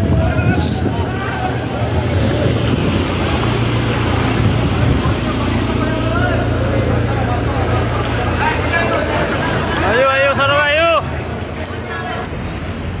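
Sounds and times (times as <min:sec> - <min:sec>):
truck engine rumble: 0:00.0 - 0:13.0
water swishing and splashing: 0:00.6 - 0:13.0.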